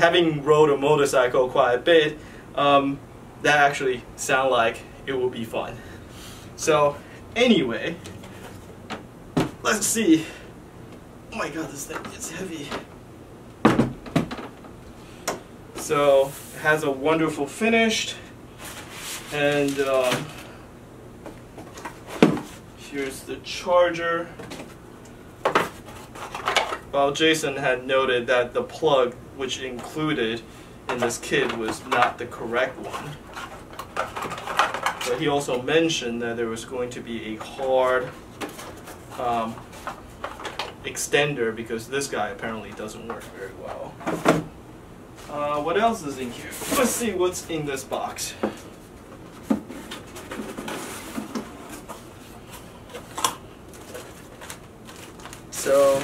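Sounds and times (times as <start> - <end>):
rustling plastic wrap: 18.6 - 20.4, 50.0 - 56.0.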